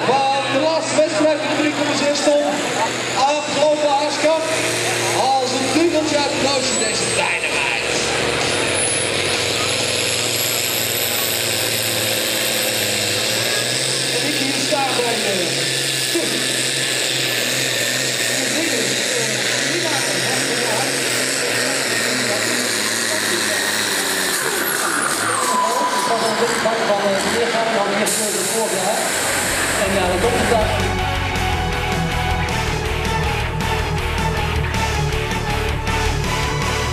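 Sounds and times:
diesel tractor engine: 0.0 - 36.9
high climbing whine: 0.0 - 36.9.

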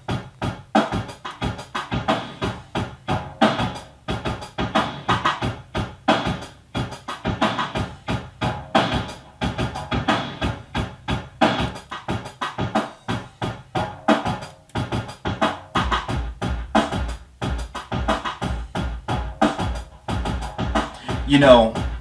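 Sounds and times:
drum machine beat: 0.0 - 22.0.

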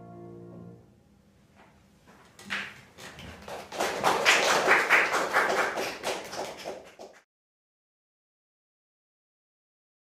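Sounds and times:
audience applauding: 2.5 - 7.3.

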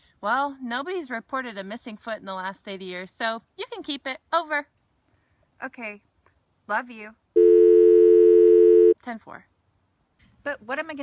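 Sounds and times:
telephone dial tone: 7.4 - 9.0.

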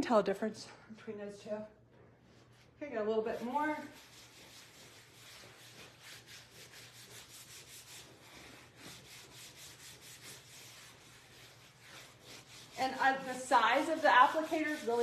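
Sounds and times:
sponge rubbing on leather: 2.2 - 15.0.

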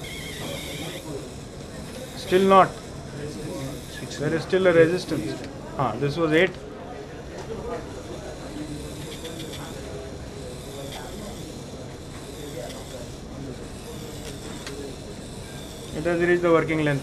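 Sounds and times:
dental handpiece whirring: 0.0 - 6.5, 7.8 - 17.0
faint distant voices: 0.0 - 17.0.

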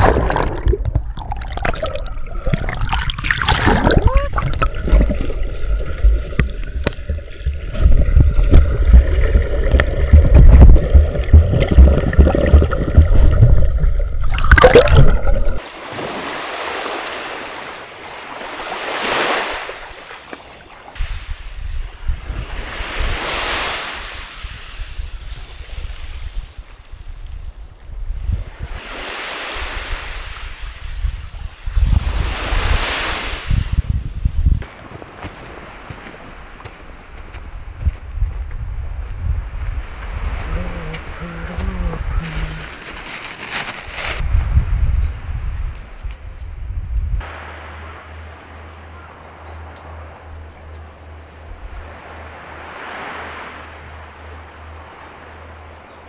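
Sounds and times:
sea water sloshing and splashing: 0.0 - 21.5
small waves washing onto beach: 0.0 - 27.6, 28.2 - 37.7, 39.4 - 46.5, 47.2 - 56.0.

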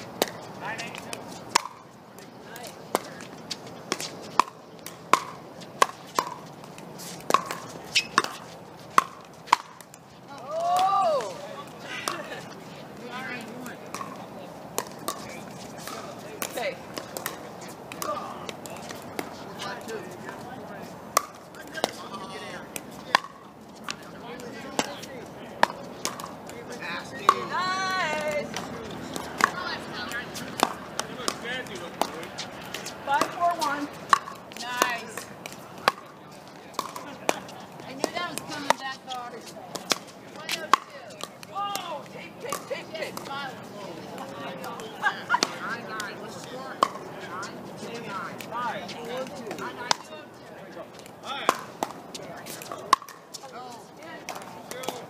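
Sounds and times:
players' voices: 0.0 - 55.0
paddles hitting plastic ball: 0.1 - 11.4, 13.4 - 20.4, 21.1 - 25.0, 25.6 - 43.5, 44.1 - 47.1, 51.0 - 53.6, 54.2 - 55.0.

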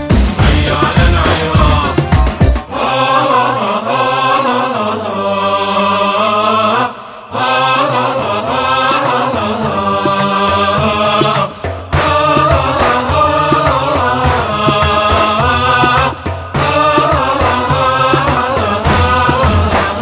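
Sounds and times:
drum beat: 0.0 - 2.8, 8.8 - 20.0
slow chanted singing: 0.4 - 20.0.

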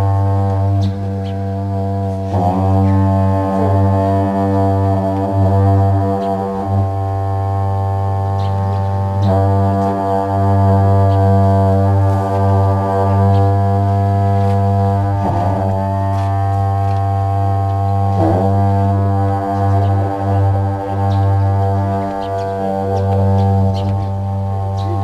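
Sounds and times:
long horns droning: 0.0 - 25.0.

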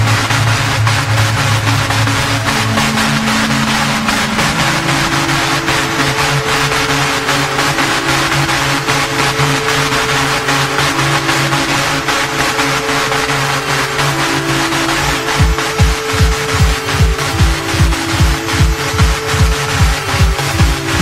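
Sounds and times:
hardstyle electronic music: 0.0 - 21.0.

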